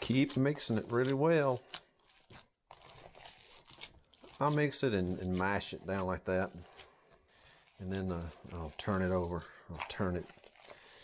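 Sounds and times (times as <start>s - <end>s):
hands kneading moist meat: 0.0s - 11.0s.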